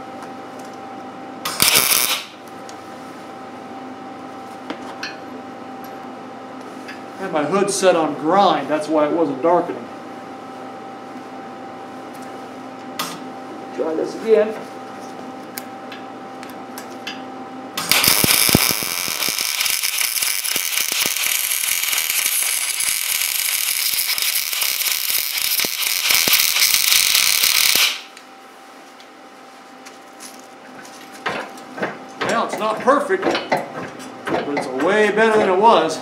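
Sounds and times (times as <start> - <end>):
welder arc crackling: 1.5 - 2.4, 17.8 - 28.2.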